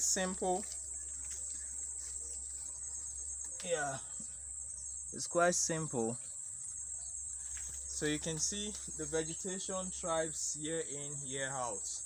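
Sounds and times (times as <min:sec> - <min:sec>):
insect chorus trilling: 0:00.0 - 0:12.0.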